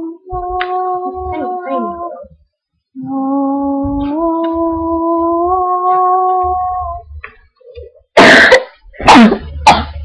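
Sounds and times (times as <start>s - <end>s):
girl singing a howl-like note: 0.0s - 2.4s, 3.0s - 7.2s.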